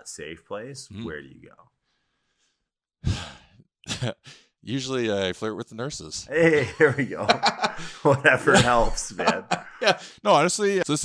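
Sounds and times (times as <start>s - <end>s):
speech: 0.0s - 1.7s, 3.9s - 7.4s, 8.0s - 11.0s
man sighing: 3.0s - 3.6s.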